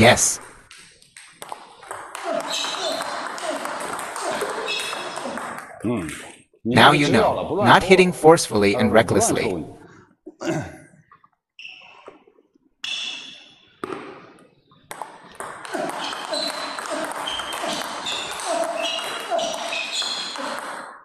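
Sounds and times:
table tennis ball hits: 0.7 - 6.3, 13.2 - 21.0.

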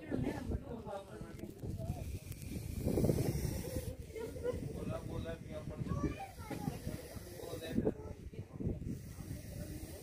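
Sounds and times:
people's voices in background: 0.0 - 10.0
cobra hissing: 1.8 - 8.0, 8.7 - 10.0.

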